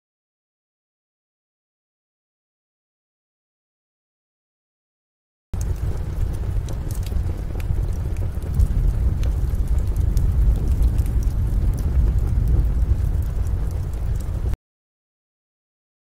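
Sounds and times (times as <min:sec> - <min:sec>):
loud low rumble: 0:05.6 - 0:14.6
sharp crackles and clicks: 0:05.6 - 0:14.6.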